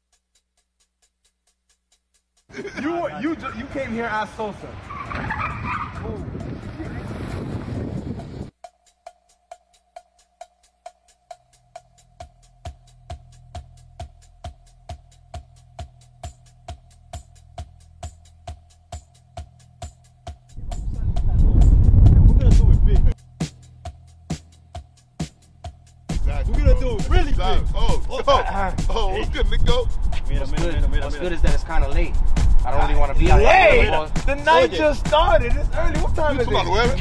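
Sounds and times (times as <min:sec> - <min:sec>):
voices: 0:02.5 - 0:07.1, 0:26.2 - 0:37.0
car engine and tyre noise: 0:03.4 - 0:06.9
quiet electronic music beat: 0:26.1 - 0:37.0.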